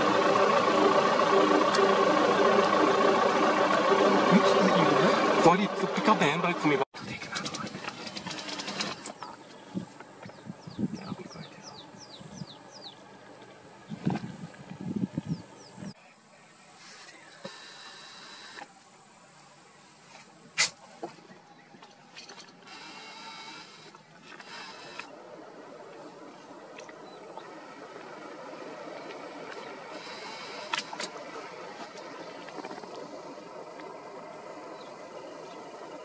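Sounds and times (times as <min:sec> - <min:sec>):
murmur of low voices: 0:00.0 - 0:07.8.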